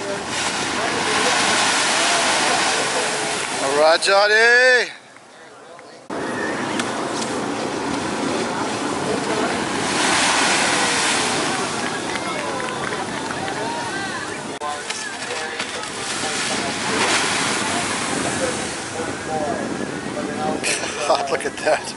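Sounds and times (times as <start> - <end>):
faint voices: 0.0 - 4.1, 4.8 - 21.9
surf washing up a beach: 0.0 - 4.9, 6.1 - 21.9.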